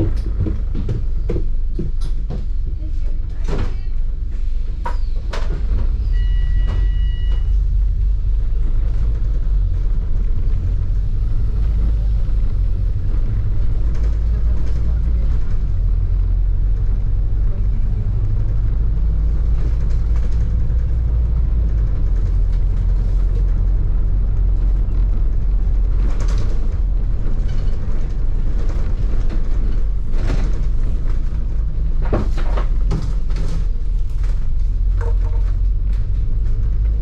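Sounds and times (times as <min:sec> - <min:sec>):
bus engine and road rumble: 0:00.0 - 0:37.0
wind buffeting microphone: 0:07.5 - 0:37.0.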